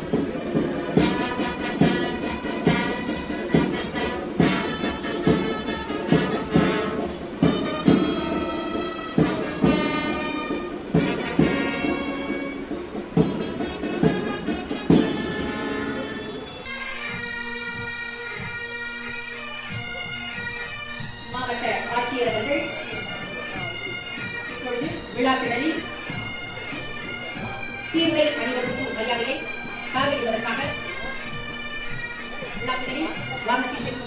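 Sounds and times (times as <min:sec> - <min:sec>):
bagpipes sustained chord: 0:00.0 - 0:34.0
drum beat: 0:00.0 - 0:34.0.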